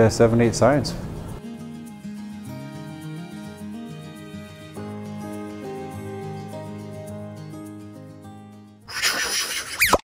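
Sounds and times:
soft background music: 0:00.0 - 0:08.8.

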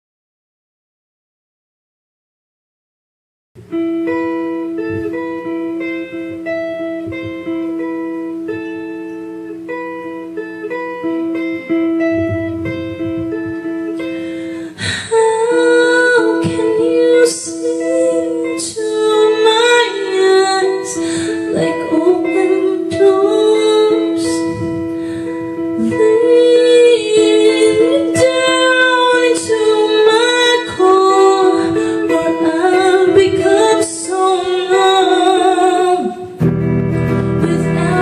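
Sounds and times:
guitar picking single notes: 0:03.6 - 0:38.0
woman singing: 0:11.0 - 0:38.0.

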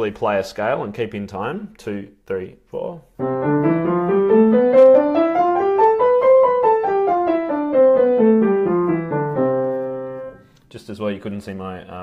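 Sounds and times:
piano scale: 0:03.2 - 0:10.4.

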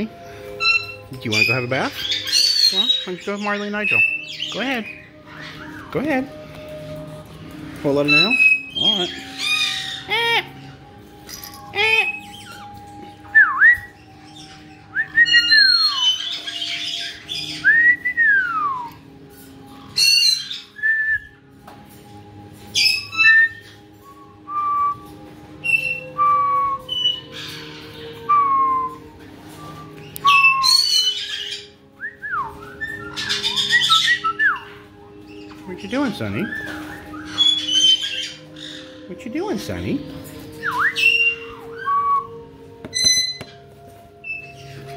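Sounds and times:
parrots whistling: 0:00.0 - 0:21.5, 0:22.6 - 0:44.9
harsh parrot squawks: 0:00.6 - 0:05.9, 0:08.2 - 0:10.8
parrot chirps: 0:00.6 - 0:05.9, 0:08.1 - 0:10.8, 0:13.9 - 0:17.7, 0:19.8 - 0:20.8, 0:36.5 - 0:39.0.

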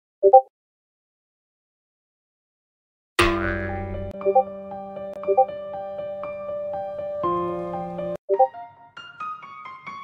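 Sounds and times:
electronic keyboard music: 0:03.7 - 0:10.0.

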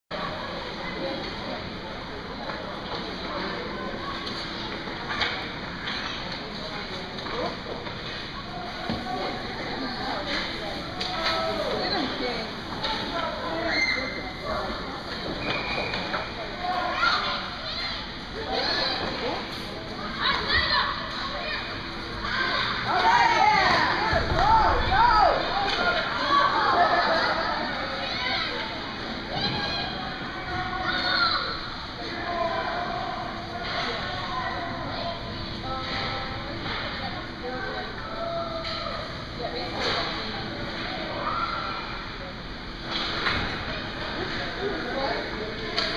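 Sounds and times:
children chattering and calling out: 0:00.2 - 0:42.8, 0:43.4 - 0:45.9.

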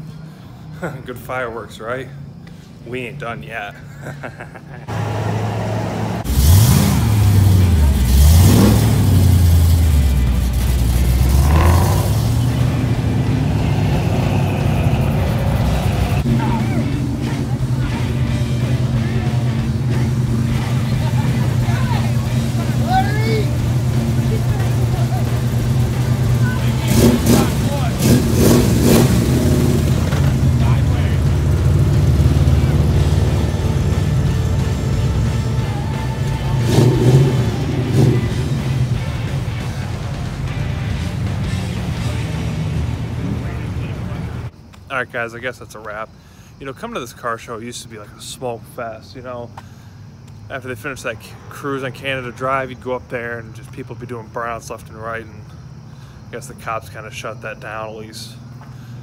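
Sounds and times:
car engines idling and revving: 0:00.0 - 0:59.0
crowd voices: 0:09.9 - 0:28.4, 0:30.1 - 0:44.5.

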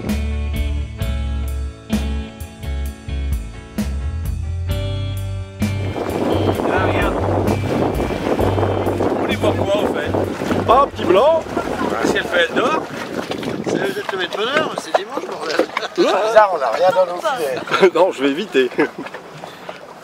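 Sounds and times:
background music: 0:00.0 - 0:11.9
motor boat engine rumble: 0:04.2 - 0:20.0
wind and water wash: 0:05.6 - 0:20.0
people's voices: 0:06.5 - 0:07.4, 0:08.5 - 0:19.1.

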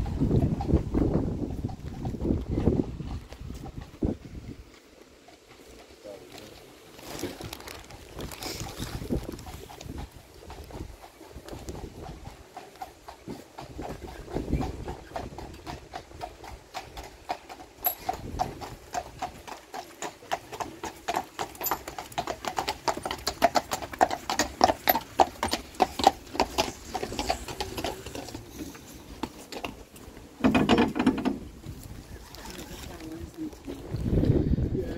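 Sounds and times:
hooves clip-clopping on tarmac: 0:00.0 - 0:34.4.

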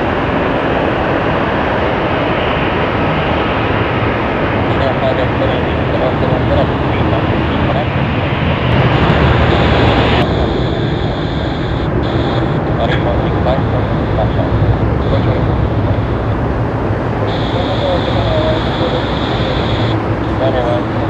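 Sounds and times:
jet airliner climbing: 0:00.0 - 0:21.0.

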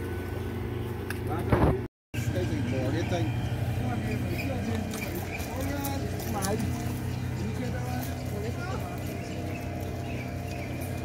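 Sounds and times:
outboard motor droning: 0:00.0 - 0:11.0.

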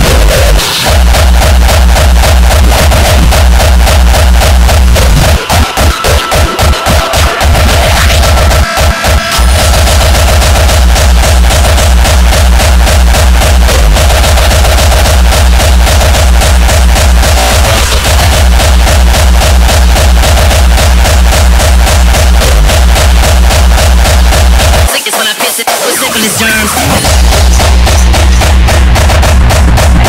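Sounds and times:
dense electronic layers: 0:00.0 - 0:30.0
fast heavy kick drum: 0:00.0 - 0:30.0.

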